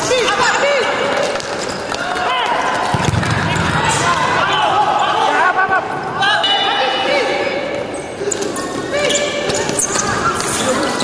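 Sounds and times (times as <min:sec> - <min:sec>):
shoes squeaking on court: 0:00.4 - 0:03.8, 0:07.8 - 0:11.0.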